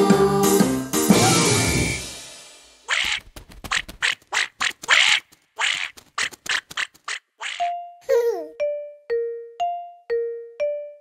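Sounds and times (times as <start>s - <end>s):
cartoon duckling quacking: 2.9s - 7.8s.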